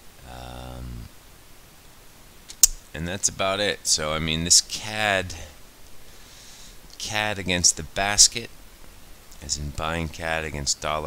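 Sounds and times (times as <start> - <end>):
sharp click: 2.5 - 2.8.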